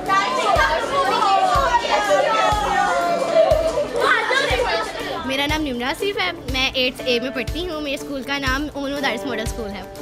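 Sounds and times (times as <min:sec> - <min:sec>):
girls chattering excitedly: 0:00.0 - 0:09.8
upbeat background music: 0:00.0 - 0:10.0.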